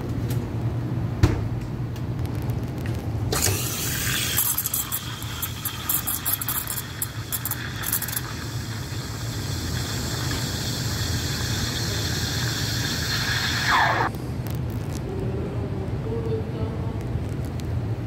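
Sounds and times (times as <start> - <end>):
low machine hum: 0.0 - 18.0
steam wand hissing into milk: 3.4 - 14.1.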